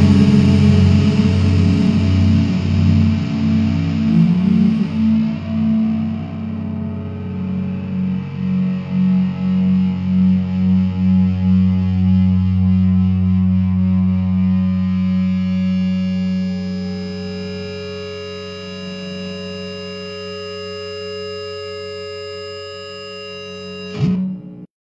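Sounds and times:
distorted electric guitar chord: 0.0 - 24.7.

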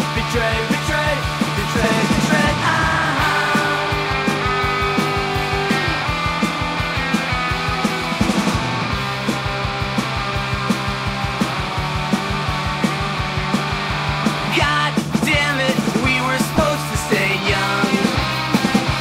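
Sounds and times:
bass guitar: 0.0 - 19.0
electric guitar: 0.0 - 19.0
steady drum beat: 0.0 - 19.0.

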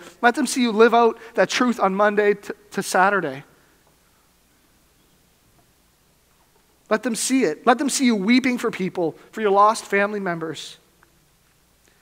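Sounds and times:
man speaking: 0.0 - 3.5, 6.9 - 10.8.

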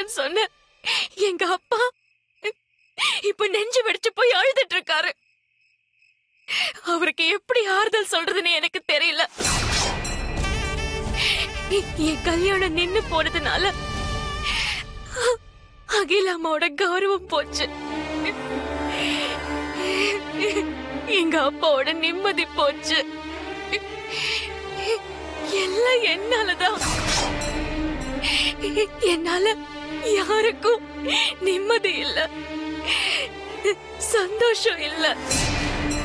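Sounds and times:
background music with held notes: 10.2 - 15.8, 17.0 - 36.0
woman crying: 18.2 - 21.5, 28.3 - 33.8.

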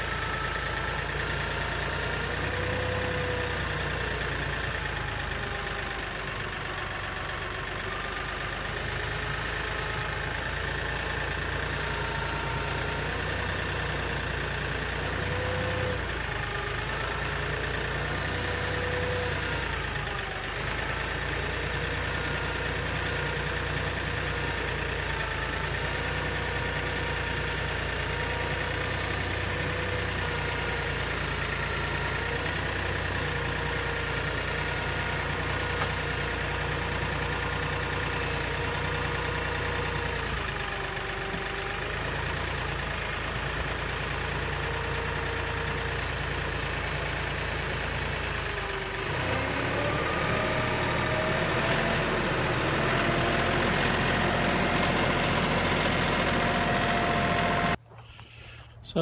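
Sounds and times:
tractor diesel engine running: 0.0 - 59.0.

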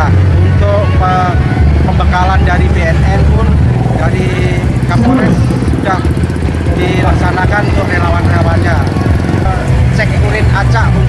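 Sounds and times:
motorcycle traffic rumbling: 0.0 - 11.0
man speaking: 3.2 - 8.0.

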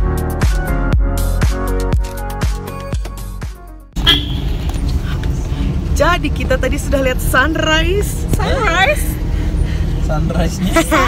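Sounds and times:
road noise: 1.9 - 11.0
engine rumble inside vehicle cabin: 4.0 - 11.0.

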